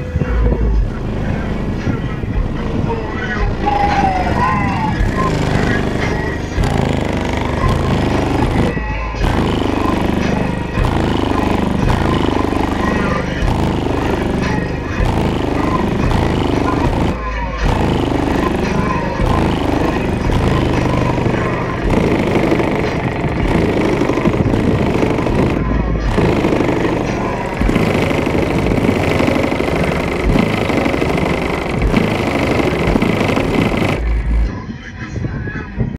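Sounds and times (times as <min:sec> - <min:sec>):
loud bass-heavy music with vocals: 0:00.0 - 0:35.9.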